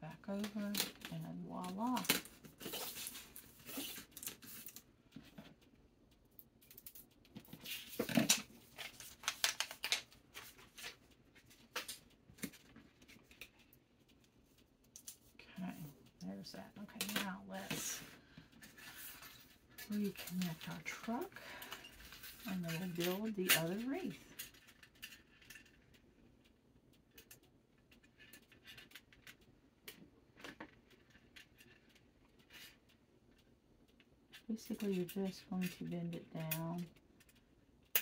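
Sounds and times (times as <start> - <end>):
handling craft materials: 7.3 - 13.7.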